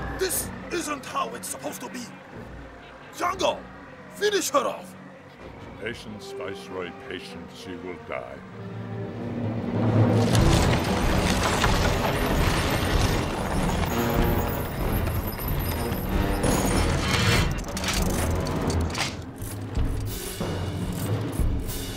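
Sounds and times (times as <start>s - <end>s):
dramatic orchestral music: 0.0s - 21.9s.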